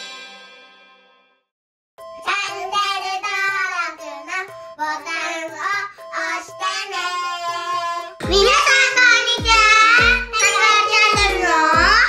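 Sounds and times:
cheerful backing music: 0:02.0 - 0:12.0
girls singing: 0:02.3 - 0:12.0.

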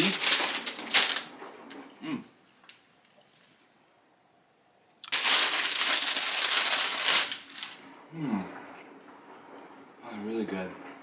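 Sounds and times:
crunching crispy chip: 0:00.0 - 0:01.3, 0:05.0 - 0:07.8.

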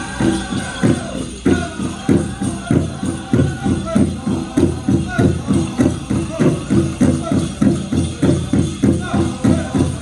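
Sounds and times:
big drum steady fast beat: 0:00.0 - 0:10.0
high-pitched group singing: 0:00.0 - 0:10.0.

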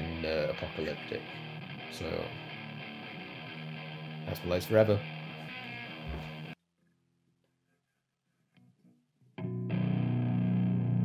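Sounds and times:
electric guitar note ringing: 0:00.0 - 0:06.6, 0:09.4 - 0:11.0.

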